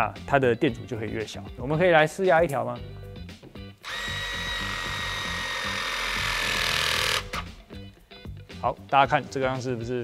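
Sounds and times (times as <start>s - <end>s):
background music with low beat: 0.0s - 10.0s
crimping tool motor whining: 3.9s - 7.5s.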